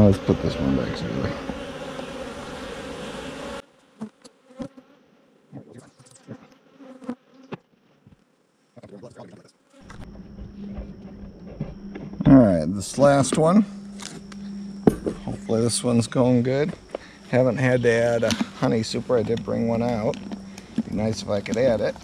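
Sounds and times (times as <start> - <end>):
bees buzzing: 0.0 - 8.4, 9.1 - 22.0
wooden hive cover knocks: 14.8 - 15.3.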